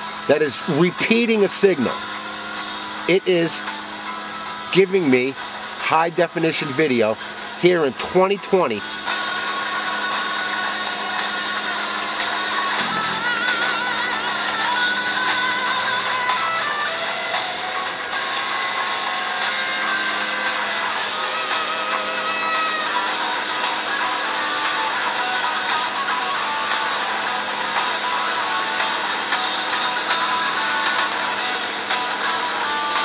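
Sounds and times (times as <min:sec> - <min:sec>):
rock music through computer speakers: 0:00.0 - 0:33.0.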